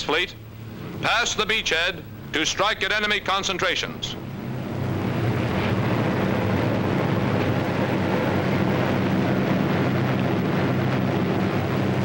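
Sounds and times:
bomber engines droning: 0:00.0 - 0:12.0.

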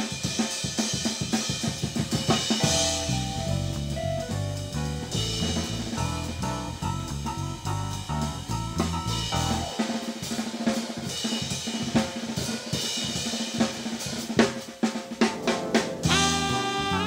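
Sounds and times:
jazz drum kit playing: 0:00.0 - 0:17.0
bass: 0:01.8 - 0:10.5, 0:16.0 - 0:17.0.

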